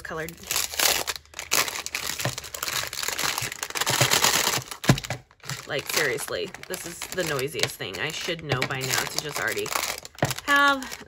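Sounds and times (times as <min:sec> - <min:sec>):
cellophane bag crinkling: 0:00.0 - 0:11.0.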